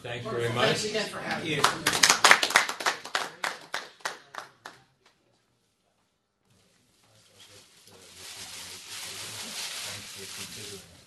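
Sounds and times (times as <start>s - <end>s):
faint room noise: 0.0s - 11.0s
audience applause: 1.5s - 4.8s.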